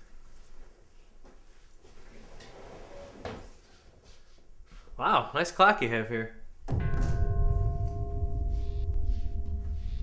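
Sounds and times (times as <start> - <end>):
chair scraping: 1.8 - 4.0.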